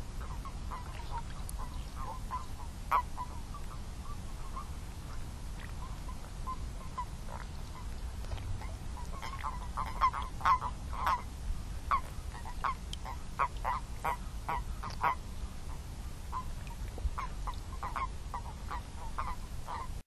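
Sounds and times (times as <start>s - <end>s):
low steady hum: 0.0s - 20.0s
toads croaking: 5.6s - 11.3s, 11.9s - 15.2s.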